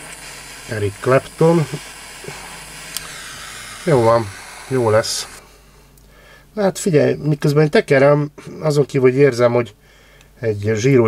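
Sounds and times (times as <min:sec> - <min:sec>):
torch flame hissing: 0:00.0 - 0:05.5.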